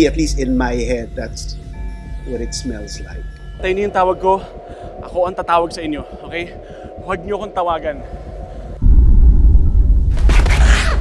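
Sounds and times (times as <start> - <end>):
deep cinematic rumble: 0.0 - 11.0.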